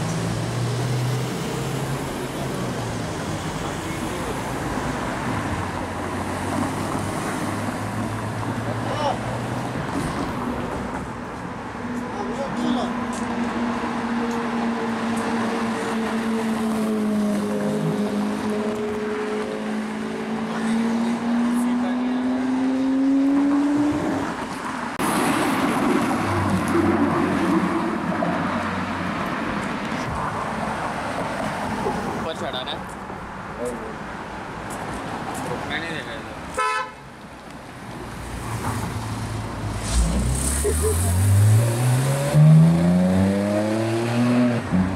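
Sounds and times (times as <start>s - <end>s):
street noise: 0.0s - 44.9s
car horn toot: 36.6s - 37.0s.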